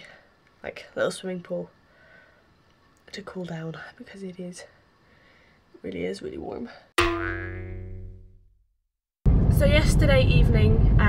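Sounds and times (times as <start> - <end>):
struck ringing musical tone: 7.0 - 8.3.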